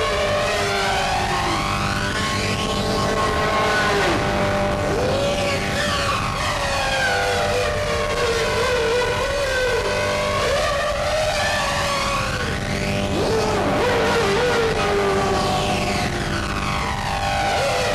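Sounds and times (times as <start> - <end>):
low steady drone: 0.0 - 17.9
wall of electronic noise: 0.0 - 17.9
warbling whine: 0.0 - 17.9.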